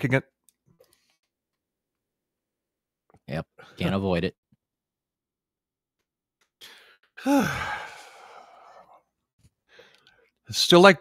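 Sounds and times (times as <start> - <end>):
man sighing: 6.6 - 9.0.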